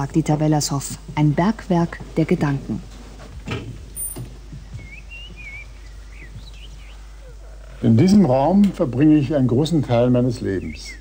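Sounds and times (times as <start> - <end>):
faint room hum: 0.0 - 11.0
bird chirping: 4.0 - 7.7, 10.4 - 11.0.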